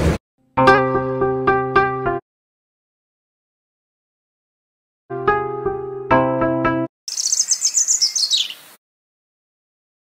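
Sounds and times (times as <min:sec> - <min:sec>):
birds chirping: 0:07.1 - 0:08.8.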